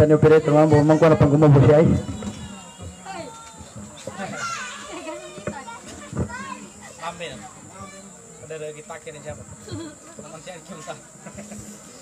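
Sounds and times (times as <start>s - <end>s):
crowd voices talking and calling: 0.0s - 12.0s.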